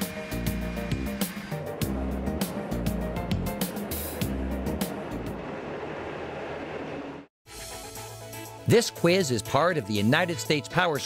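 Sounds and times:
aircraft engine: 0:00.0 - 0:07.3.

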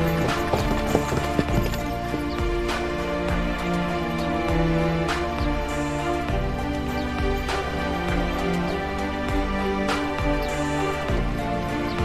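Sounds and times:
horse hooves clip-clopping: 0:00.0 - 0:08.7, 0:10.2 - 0:12.0
background music: 0:00.0 - 0:12.0.

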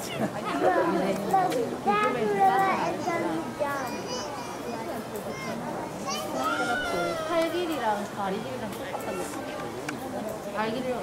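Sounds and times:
children talking and calling out: 0:00.0 - 0:11.0
crowd chatter: 0:00.0 - 0:11.0.

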